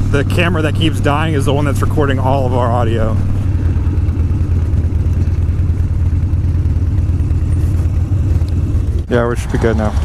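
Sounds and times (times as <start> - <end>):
motorcycle engine rumbling: 0.0 - 10.0.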